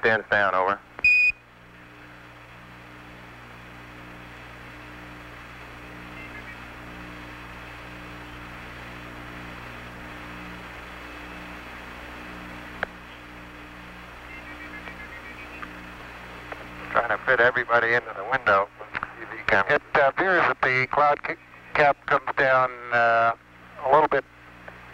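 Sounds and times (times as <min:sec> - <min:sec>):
radio static hiss: 0:00.0 - 0:24.9
low hum: 0:00.8 - 0:24.9.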